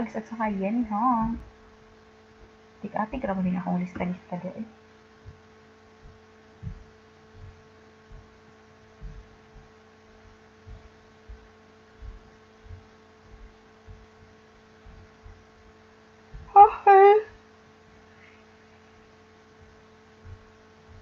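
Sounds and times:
electrical hum: 0.0 - 21.0
soft low thumps: 0.9 - 1.7, 5.2 - 17.0, 19.5 - 21.0.

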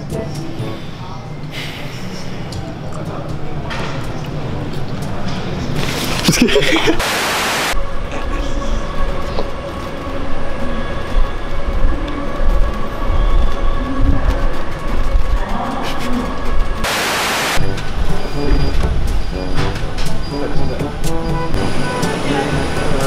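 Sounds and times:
music: 0.0 - 6.4, 17.6 - 23.0
train car rumble: 17.6 - 23.0.

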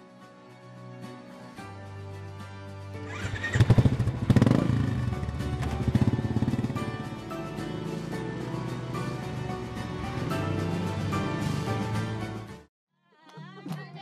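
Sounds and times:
background music: 0.0 - 14.0
motorcycle engine revving: 3.0 - 8.4.

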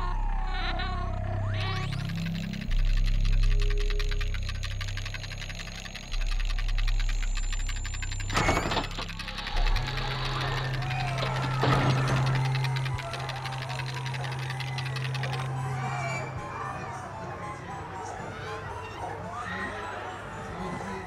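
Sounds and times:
fast mechanical ticking: 1.6 - 16.2.

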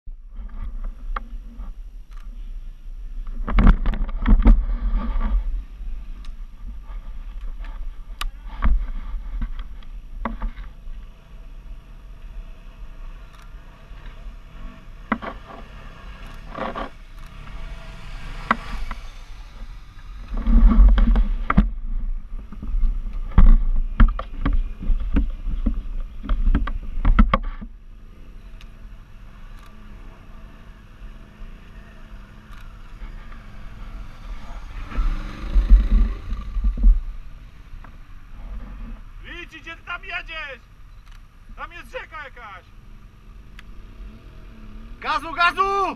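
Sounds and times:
motorbike engines revving: 2.4 - 45.9
low rumble: 15.5 - 39.3.

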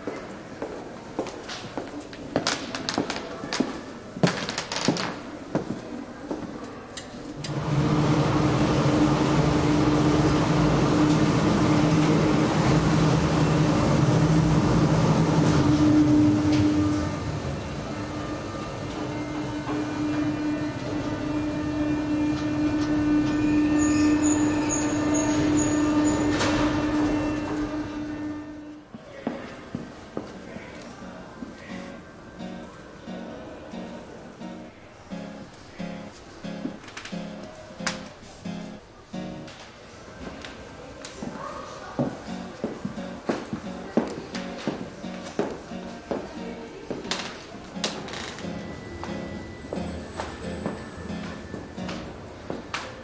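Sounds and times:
motorized cart humming: 7.4 - 28.1
footsteps on hard floor: 42.0 - 47.3.

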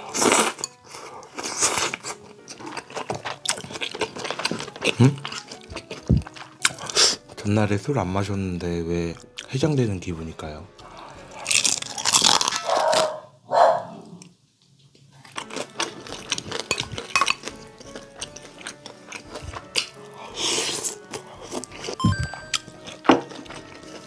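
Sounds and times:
crunching fried food: 0.0 - 7.3, 10.8 - 13.3, 15.1 - 22.0, 22.7 - 24.0
soft wet chewing: 0.1 - 7.3, 10.8 - 13.1, 14.1 - 24.0.

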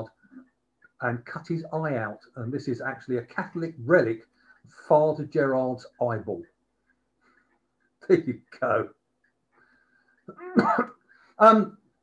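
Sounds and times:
person coughing: 10.3 - 10.9.

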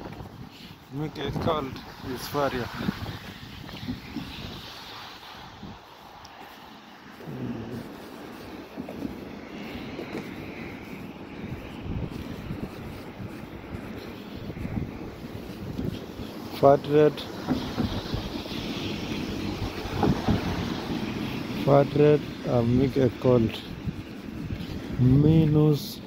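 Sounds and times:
footsteps on walkway: 0.0 - 26.0
road traffic: 0.0 - 26.0
wind buffeting microphone: 0.0 - 26.0.

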